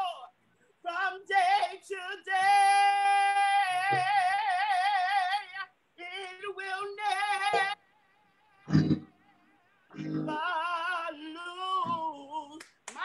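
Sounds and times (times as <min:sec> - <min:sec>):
woman singing gospel solo: 0:10.0 - 0:12.6.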